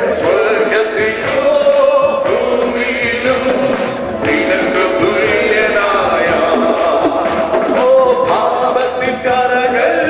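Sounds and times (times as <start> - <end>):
men singing worship song: 0.0 - 10.0.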